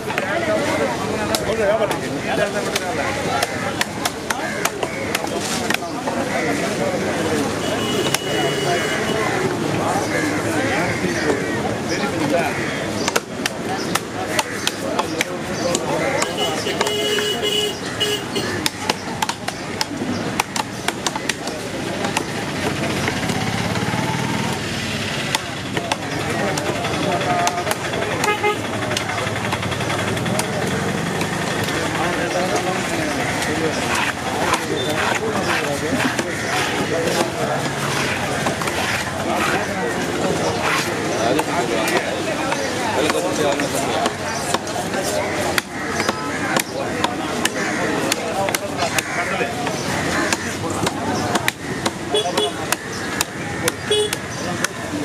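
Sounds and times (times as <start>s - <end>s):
knife chopping fish on wood: 18.5s - 23.2s, 50.3s - 54.8s
vehicle engine running: 22.6s - 33.7s.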